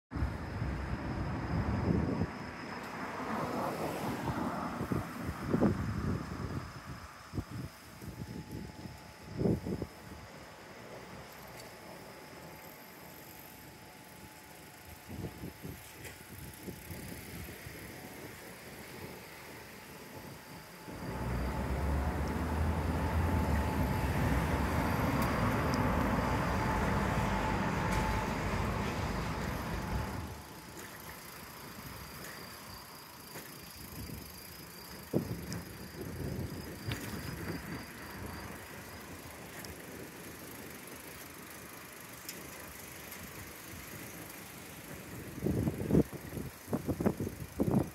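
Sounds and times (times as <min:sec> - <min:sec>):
passing traffic: 0:00.2 - 0:47.9
loud steady rushing noise: 0:16.4 - 0:30.7.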